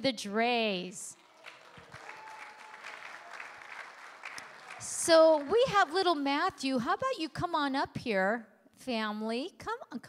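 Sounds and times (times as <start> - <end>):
congregation applauding lightly: 1.2 - 5.6.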